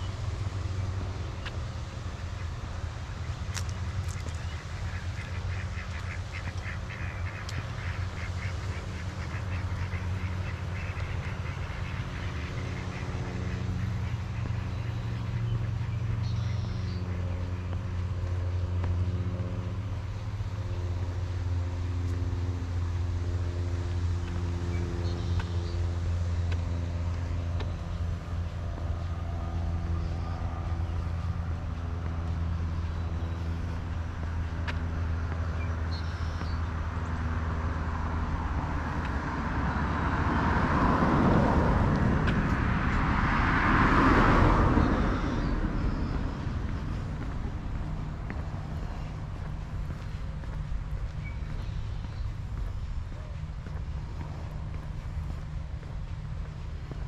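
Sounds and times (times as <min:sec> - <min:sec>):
low engine hum: 0:00.0 - 0:57.0
vehicles passing close: 0:00.0 - 0:57.0.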